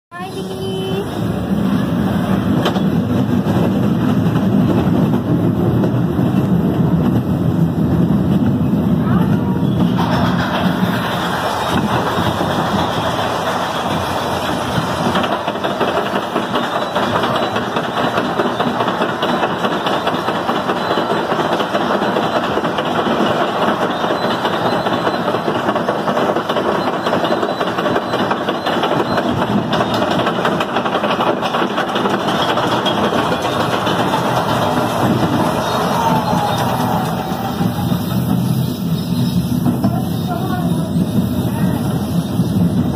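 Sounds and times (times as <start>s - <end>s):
ride car rushing rumble on track: 0.1s - 42.9s
voices: 39.7s - 42.2s.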